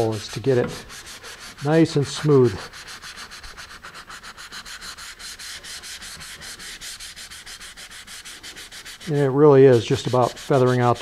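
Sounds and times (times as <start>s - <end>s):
sandpaper rubbing back and forth: 0.0s - 11.0s.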